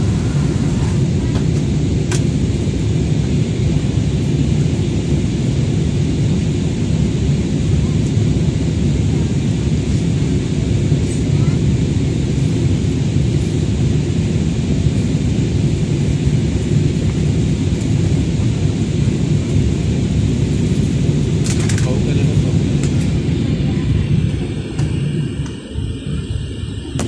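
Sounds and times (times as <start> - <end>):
jet engines and airflow rumble: 0.0 - 27.0.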